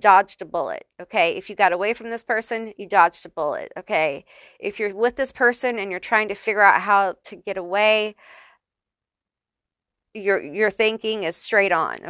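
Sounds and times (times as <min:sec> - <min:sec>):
woman speaking: 0:00.0 - 0:08.2, 0:10.2 - 0:12.0
woman's soft intake of breath: 0:08.2 - 0:08.6.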